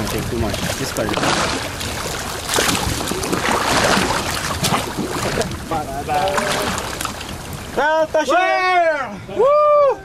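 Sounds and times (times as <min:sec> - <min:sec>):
fish thrashing in water: 0:00.0 - 0:07.7
wind buffeting microphone: 0:00.0 - 0:08.2.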